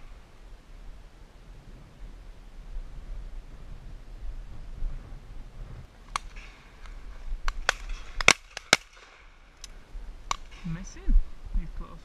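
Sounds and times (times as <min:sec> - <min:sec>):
low rumble: 0:00.0 - 0:06.0
distant shotgun shots: 0:07.5 - 0:09.4.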